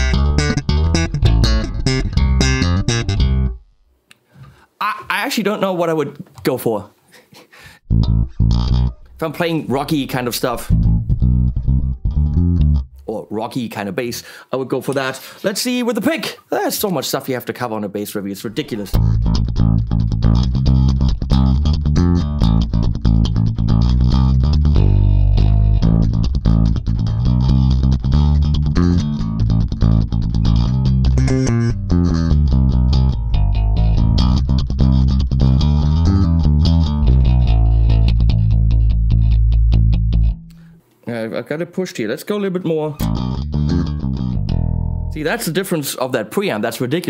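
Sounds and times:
electric bass fast picked notes: 0.0 - 3.8, 7.9 - 13.0, 18.8 - 40.7, 43.0 - 45.5.

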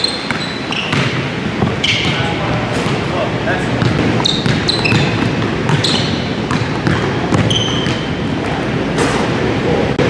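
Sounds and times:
sneaker squeaks: 0.0 - 3.1, 3.8 - 9.4
gym background noise: 0.0 - 10.0
basketball bouncing on hardwood floor: 0.3 - 3.0, 3.8 - 8.1.

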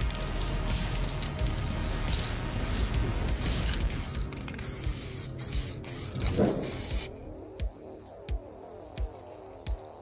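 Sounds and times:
spray can hissing: 0.2 - 10.0.

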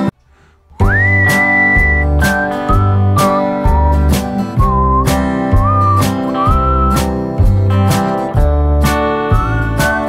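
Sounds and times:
guitar background music: 0.0 - 10.0.

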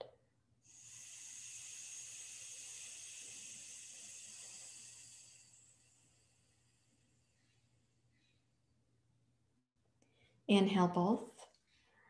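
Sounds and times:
slow exhale through nostril: 0.6 - 8.4.

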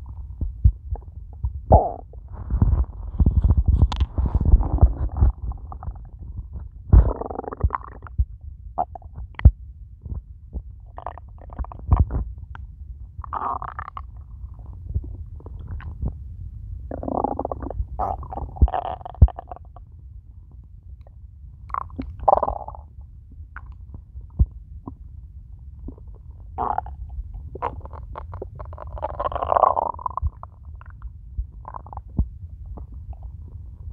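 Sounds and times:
stomach growling and gurgling: 0.0 - 12.6, 13.2 - 16.2, 16.9 - 19.9, 21.0 - 25.1, 25.8 - 33.9
low steady rumble: 0.0 - 33.9.

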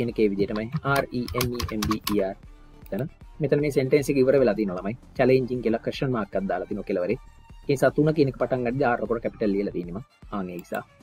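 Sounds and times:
person talking: 0.0 - 10.9
computer keyboard typing: 0.5 - 2.3.

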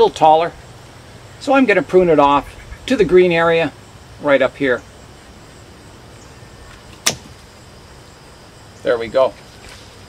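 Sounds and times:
pruners snipping: 6.7 - 7.6.

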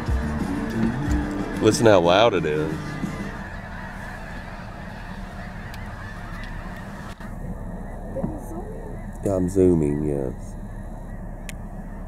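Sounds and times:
geese honking: 0.0 - 12.0
low rumble: 0.0 - 12.0.

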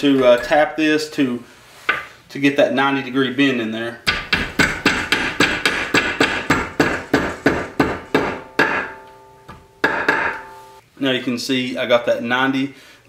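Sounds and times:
metal ringing: 7.8 - 10.8.

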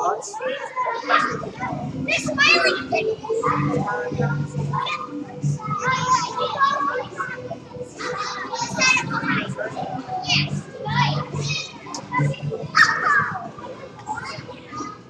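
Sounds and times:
children shouting and chattering: 0.0 - 15.0.

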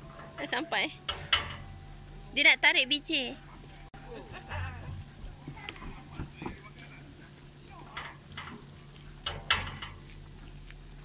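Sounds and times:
machinery humming: 0.0 - 11.0.

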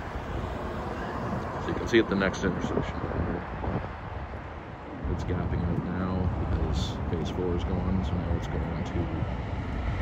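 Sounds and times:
road traffic rumble: 0.0 - 10.0
wind buffeting microphone: 0.0 - 10.0.

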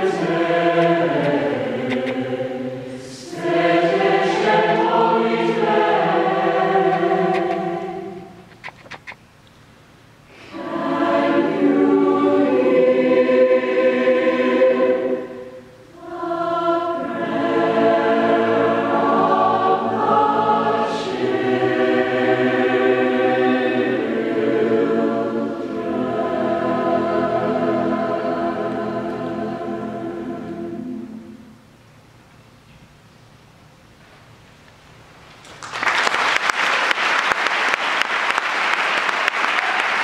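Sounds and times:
mixed choir singing chords: 0.0 - 8.5, 10.3 - 31.7.

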